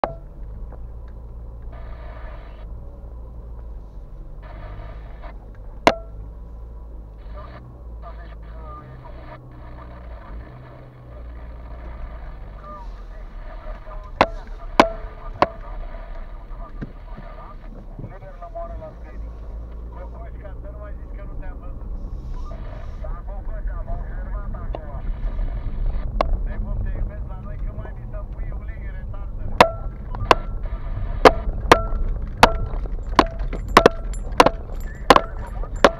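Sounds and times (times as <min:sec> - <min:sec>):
sharp knocks: 0:05.8 - 0:06.2, 0:29.6 - 0:30.5, 0:31.2 - 0:35.9
car driving over gravel: 0:09.1 - 0:35.9.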